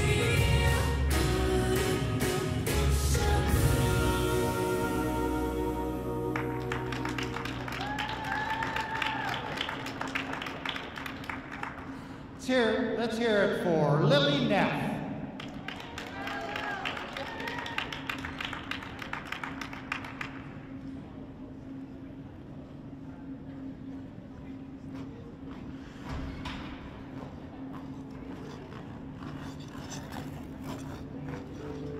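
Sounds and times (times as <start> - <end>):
audience applauding: 6.3 - 12.0, 15.4 - 20.5
steady low hum: 18.0 - 31.9.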